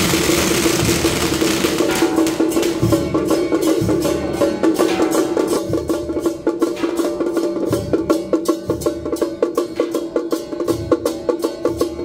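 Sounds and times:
crashing cymbals: 0.0 - 12.0
drum beats: 0.0 - 12.0.

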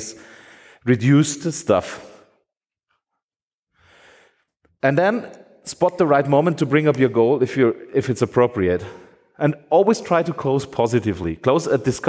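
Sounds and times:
breath into microphone: 0.2 - 0.9, 3.7 - 4.5, 8.8 - 9.3
man speaking: 0.8 - 2.1, 4.8 - 12.0.

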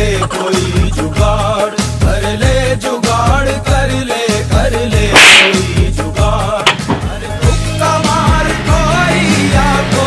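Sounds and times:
music with steady bass beat: 0.0 - 10.0.

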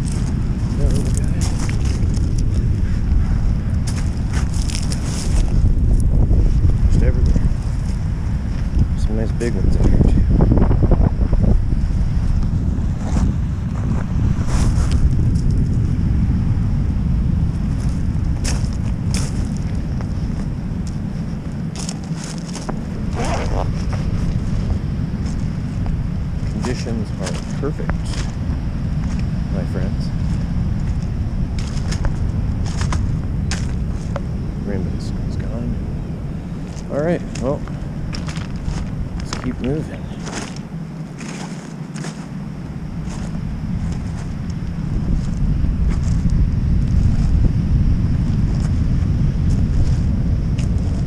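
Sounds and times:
wind buffeting microphone: 0.0 - 51.0
wet pebbles crunching: 3.8 - 5.6, 21.7 - 24.6, 30.3 - 34.2, 36.6 - 42.4.

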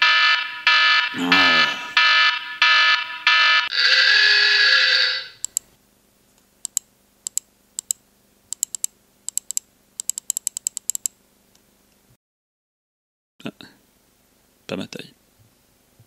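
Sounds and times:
short alarm beeps: 0.0 - 3.7
long buzzer tone: 0.0 - 5.4
keyboard and mouse clicks: 5.4 - 5.7, 6.6 - 11.2.

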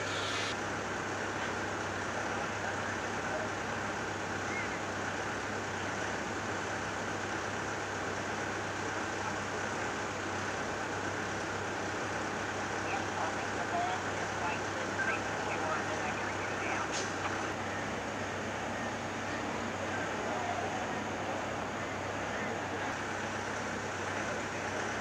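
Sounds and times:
constant low hum: 0.0 - 25.0
rumble of traffic and machinery: 0.0 - 25.0.

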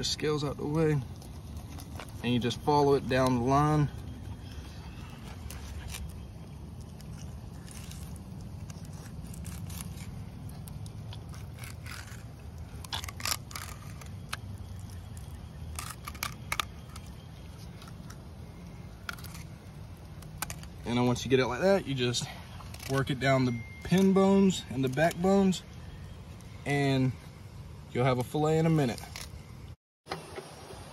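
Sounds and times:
blade scrapes and crackles: 0.0 - 25.6, 28.0 - 29.5.

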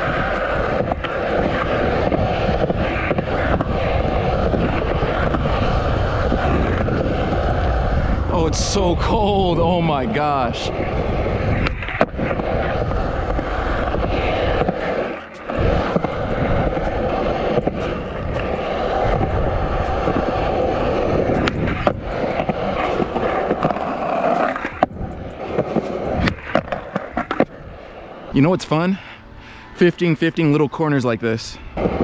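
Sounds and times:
skateboard clicks and knocks: 0.0 - 8.0, 10.7 - 27.8, 31.8 - 32.0
skateboard wheels rolling on concrete: 0.0 - 32.0.

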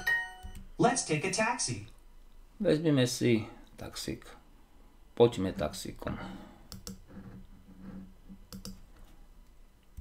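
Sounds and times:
computer mouse clicks: 6.7 - 7.0, 8.5 - 8.8.

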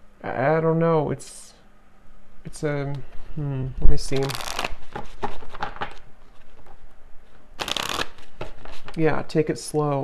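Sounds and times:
cards being shuffled: 3.9 - 6.8, 7.6 - 9.0.

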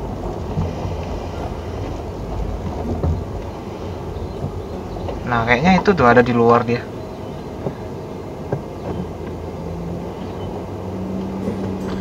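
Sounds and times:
car engine idling: 0.0 - 12.0.

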